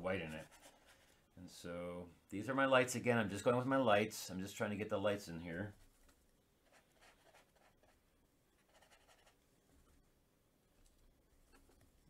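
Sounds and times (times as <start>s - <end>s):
brush strokes on paper: 0.1s - 1.2s, 5.7s - 8.0s.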